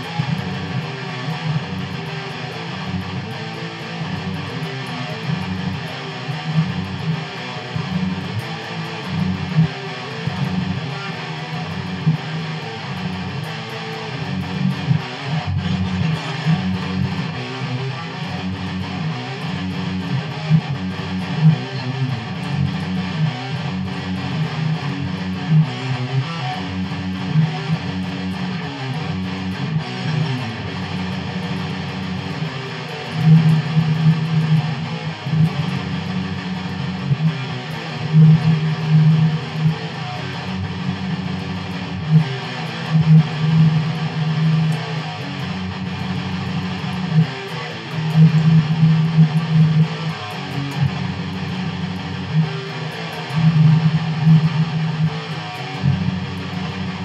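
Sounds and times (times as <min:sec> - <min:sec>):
distorted electric guitar riff: 0:00.0 - 0:57.0.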